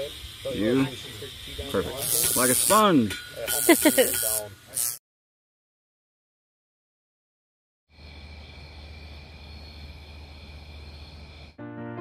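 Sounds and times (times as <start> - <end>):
slow soft music: 11.6 - 12.0.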